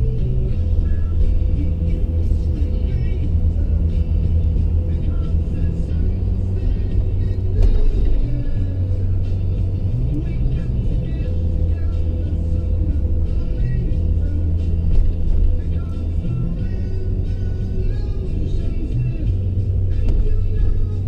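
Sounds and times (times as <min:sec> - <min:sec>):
car cabin rumble: 0:00.0 - 0:21.0
music playing: 0:00.0 - 0:21.0.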